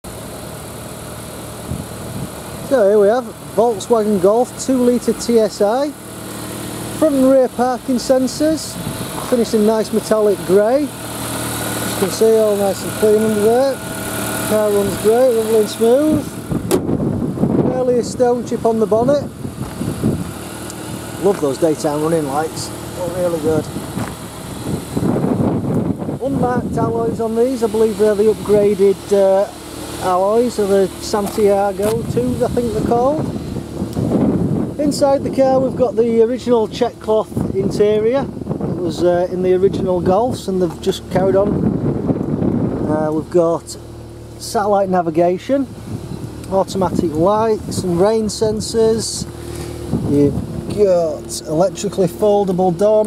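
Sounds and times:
car engine idling: 0:00.0 - 0:53.0
rough rumbling noise: 0:00.0 - 0:53.0.

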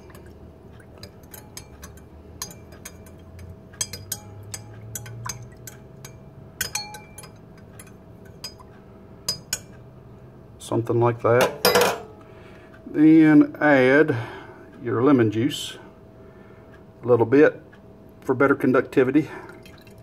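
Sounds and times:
spoon clinking against glass: 0:01.0 - 0:08.7, 0:09.3 - 0:09.7.

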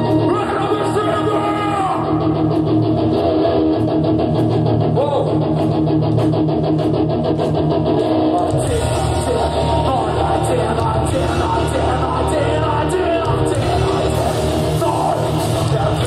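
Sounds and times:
electric guitars: 0:00.0 - 0:16.0
drum kit: 0:02.4 - 0:16.0
person singing: 0:08.5 - 0:16.0.

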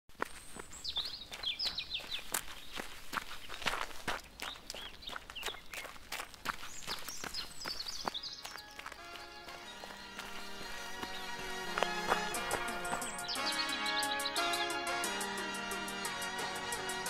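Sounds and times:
footsteps on gravel: 0:00.1 - 0:14.4
birds chirping: 0:00.1 - 0:17.0.

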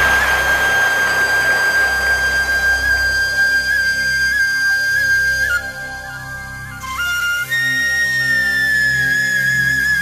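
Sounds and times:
flute long high note: 0:00.0 - 0:10.0.

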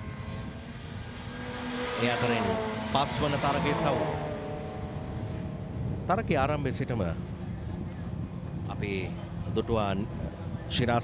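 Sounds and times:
racing car engines passing: 0:00.0 - 0:11.0.

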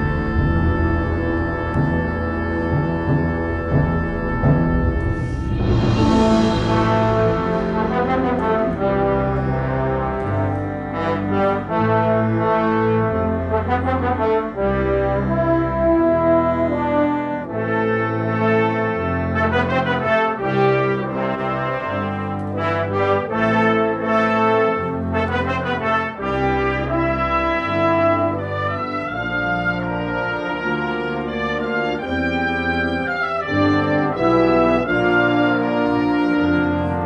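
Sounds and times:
concert band playing: 0:00.0 - 0:14.6.

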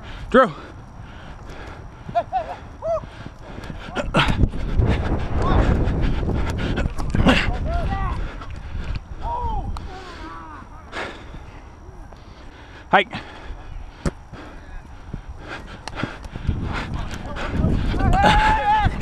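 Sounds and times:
wind rumble on microphone: 0:00.0 - 0:12.2, 0:13.3 - 0:19.0
players shouting: 0:02.1 - 0:04.4, 0:07.3 - 0:08.5, 0:09.2 - 0:12.1, 0:16.9 - 0:19.0.

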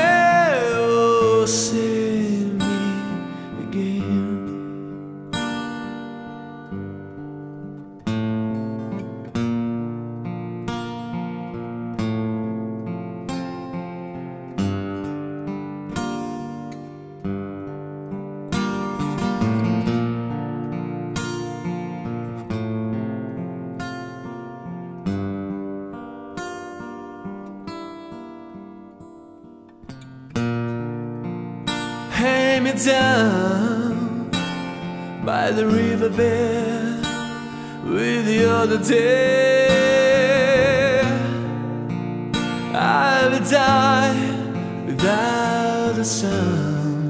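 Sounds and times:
acoustic guitar chords: 0:00.0 - 0:47.0.

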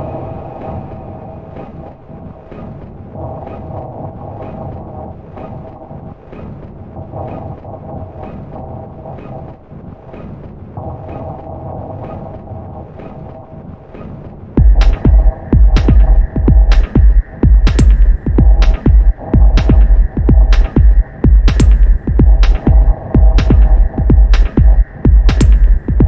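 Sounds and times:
low rumbling drone: 0:00.0 - 0:26.0
sustained synth tones: 0:00.0 - 0:26.0.

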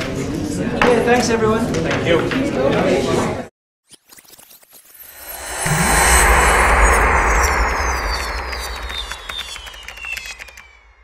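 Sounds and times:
downward sliding whistling tones: 0:05.0 - 0:11.0
rushing swell with deep rumble: 0:05.2 - 0:10.7.

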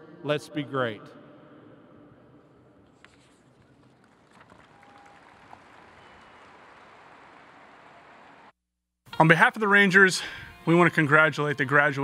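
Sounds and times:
faint stadium ambience hiss: 0:02.4 - 0:08.5.

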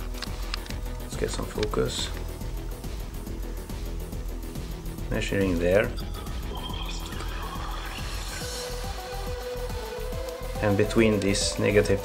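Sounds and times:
background music with low bass: 0:00.0 - 0:12.0.

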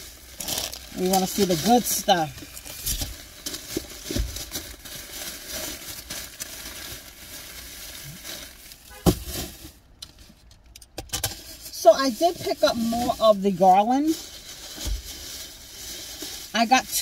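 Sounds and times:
rustling and crinkling: 0:00.0 - 0:17.0.

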